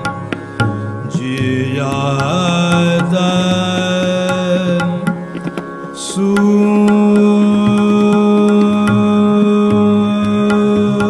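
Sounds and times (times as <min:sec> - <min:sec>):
tabla strokes: 0:00.0 - 0:11.0.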